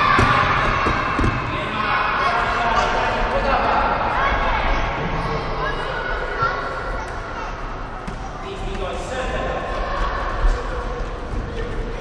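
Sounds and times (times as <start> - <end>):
children calling and chattering: 0.0 - 8.5.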